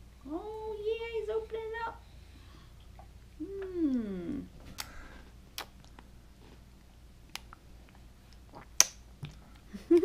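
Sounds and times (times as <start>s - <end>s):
baby's mouth smacking wetly: 5.6s - 6.0s, 8.4s - 9.4s.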